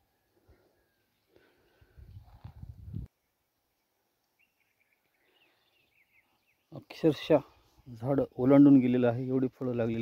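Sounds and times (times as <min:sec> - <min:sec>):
faint bird chirps: 0:03.1 - 0:08.0.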